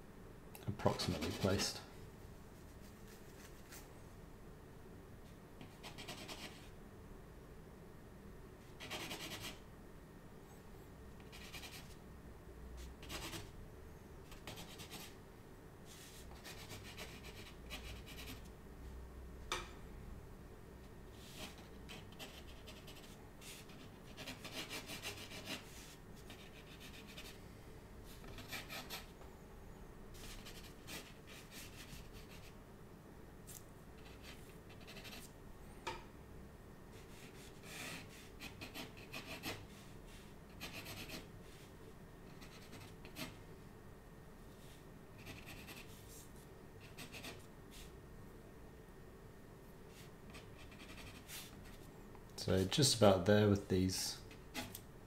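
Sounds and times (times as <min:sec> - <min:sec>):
pencil sketching on paper: 0:01.0 - 0:01.7, 0:08.8 - 0:09.6, 0:11.3 - 0:12.0, 0:13.0 - 0:13.5, 0:14.3 - 0:15.2, 0:16.0 - 0:18.5, 0:21.2 - 0:27.4, 0:30.2 - 0:32.5, 0:34.0 - 0:35.3, 0:40.5 - 0:41.3, 0:42.3 - 0:43.4, 0:45.2 - 0:46.0, 0:50.3 - 0:51.6.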